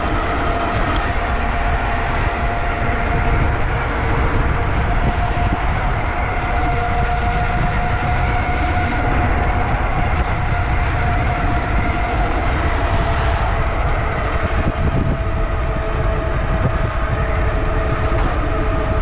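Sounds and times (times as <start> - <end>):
electric motor whine: 0.0 - 19.0
wind rumble on microphone: 0.0 - 19.0.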